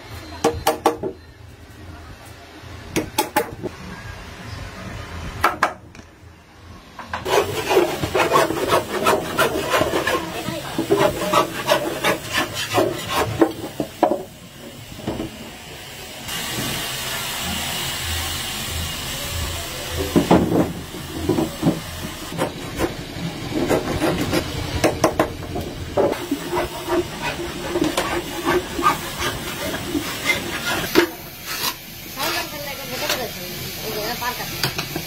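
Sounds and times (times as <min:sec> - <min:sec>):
wood scraping: 0:07.2 - 0:14.2, 0:26.0 - 0:31.8
steady hiss: 0:10.2 - 0:22.4.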